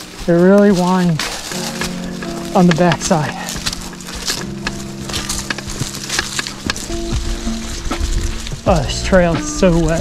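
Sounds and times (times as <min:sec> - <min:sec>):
bike clicks and knocks over bumps: 0:00.0 - 0:10.0
bike tyres crackling on leaves: 0:00.0 - 0:10.0.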